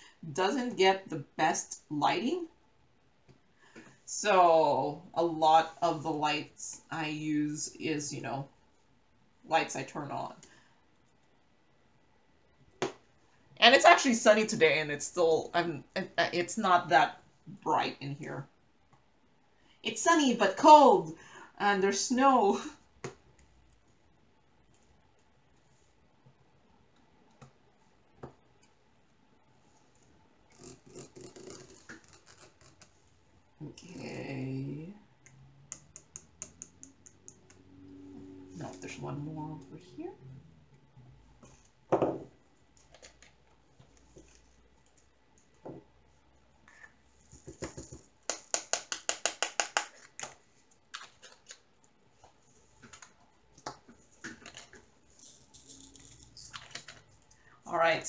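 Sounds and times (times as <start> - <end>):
plastic beads rattling: 54.6 - 57.1.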